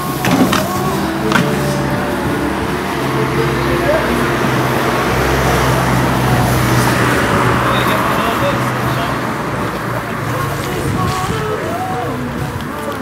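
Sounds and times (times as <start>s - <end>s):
indistinct voices: 0.0s - 13.0s
road noise: 0.0s - 13.0s
vehicle engine drone: 0.0s - 13.0s.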